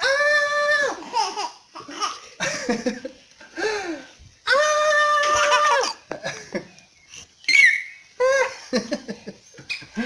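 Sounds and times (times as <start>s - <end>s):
small child squealing: 0.0s - 1.1s, 4.5s - 6.0s, 7.5s - 8.5s.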